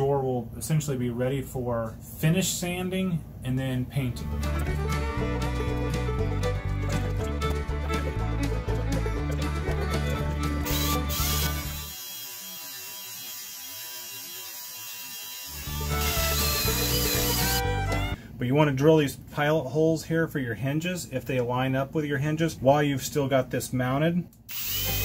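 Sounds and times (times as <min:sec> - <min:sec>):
background music: 0:04.2 - 0:11.9, 0:15.6 - 0:18.2
power drill boring wood: 0:10.5 - 0:18.0, 0:24.5 - 0:25.0.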